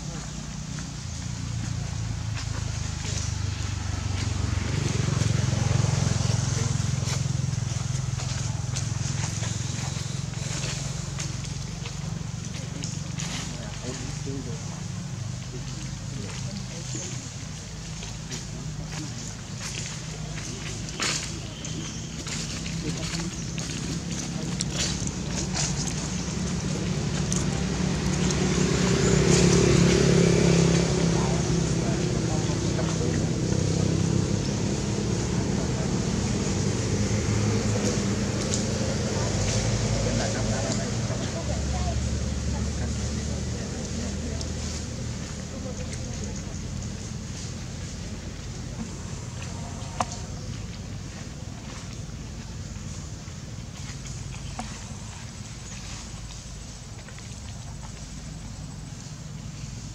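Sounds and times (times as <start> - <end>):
low motor hum: 0.0 - 59.9
steady low pulsing rumble: 0.0 - 59.9.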